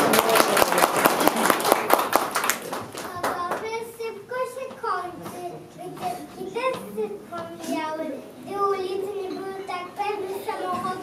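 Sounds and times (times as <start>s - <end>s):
people clapping: 0.0s - 3.8s
voices: 3.1s - 11.0s.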